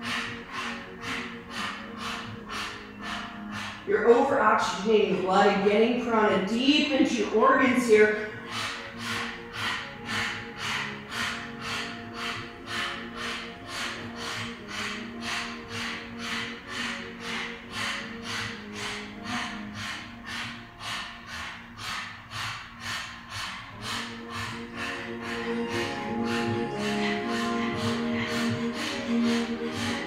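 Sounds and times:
background music with low tones: 0.0 - 30.0
rapid panting: 0.0 - 30.0.

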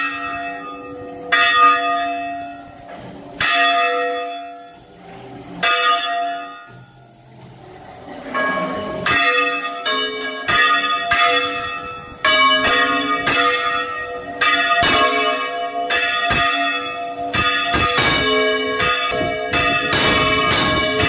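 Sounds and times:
church bells pealing: 0.0 - 21.0.

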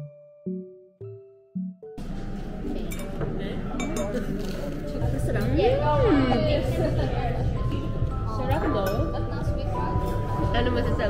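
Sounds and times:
people talking: 2.5 - 11.0
dishes and chopsticks clinking: 2.9 - 4.5.

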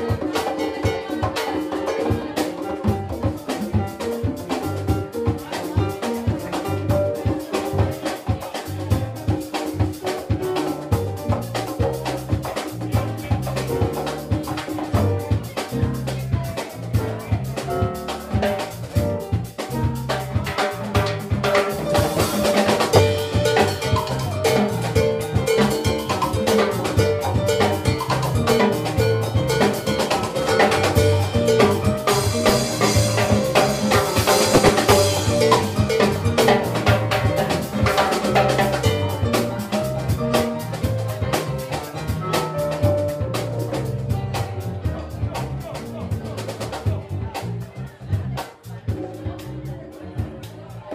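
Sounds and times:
drums and hand percussion: 0.0 - 50.9
salsa band playing: 0.0 - 50.9
electric bass line: 10.6 - 50.9.

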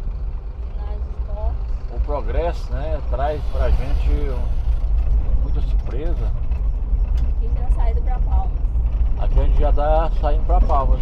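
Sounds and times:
car driving road rumble: 0.0 - 11.0.

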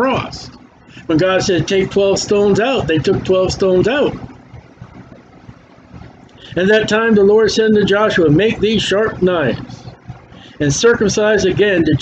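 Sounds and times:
faint low background rumble: 0.0 - 12.0.

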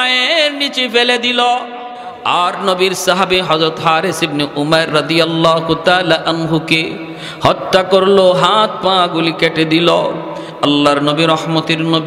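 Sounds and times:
man preaching sing-song: 0.0 - 12.0.

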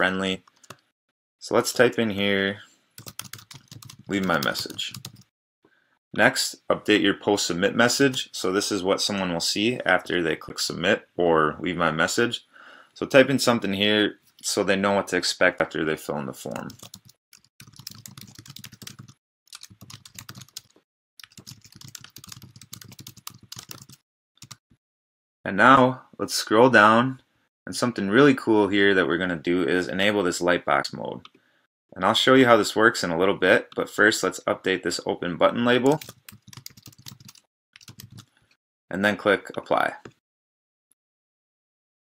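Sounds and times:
keyboard typing: 0.4 - 0.8, 3.0 - 5.3, 16.5 - 24.6, 35.9 - 38.3.

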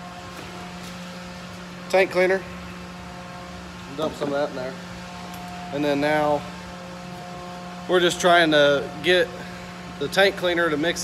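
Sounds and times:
pump motor humming: 0.0 - 11.0.

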